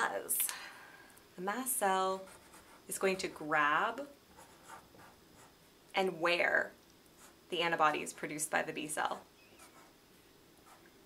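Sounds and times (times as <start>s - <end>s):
marker scratching on paper: 2.2s - 3.5s, 4.3s - 5.6s, 7.2s - 7.4s, 9.6s - 10.0s, 10.6s - 10.9s.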